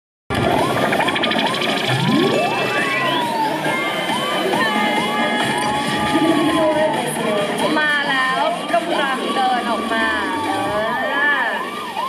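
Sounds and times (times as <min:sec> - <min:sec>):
dense noisy din: 0:00.3 - 0:12.0
electronic siren whoops: 0:00.3 - 0:12.0.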